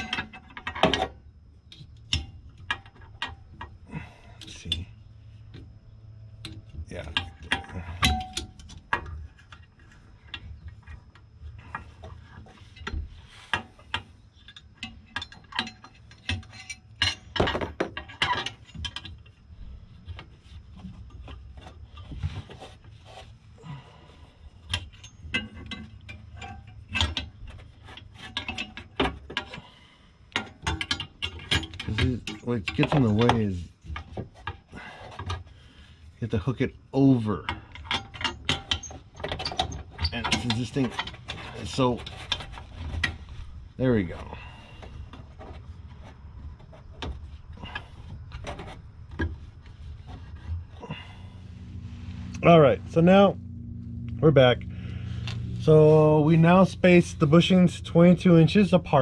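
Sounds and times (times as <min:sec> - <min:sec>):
metallic clicks and knocks: 0:00.0 - 0:03.8, 0:06.4 - 0:19.4, 0:24.7 - 0:29.7, 0:30.3 - 0:35.5, 0:37.4 - 0:43.4
low steady hum: 0:00.0 - 0:59.0.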